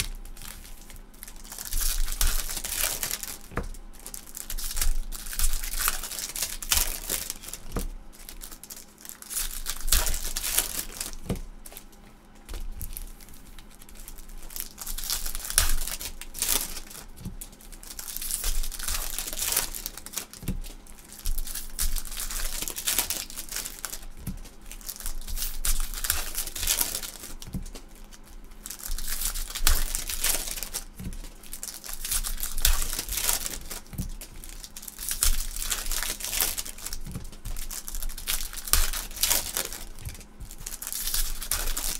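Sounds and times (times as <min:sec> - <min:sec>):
foil wrappers crinkling: 0:00.0 - 0:41.9.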